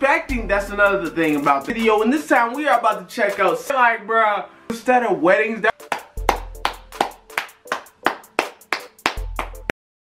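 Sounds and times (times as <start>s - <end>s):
rhythmic hand claps: 5.8s - 9.8s.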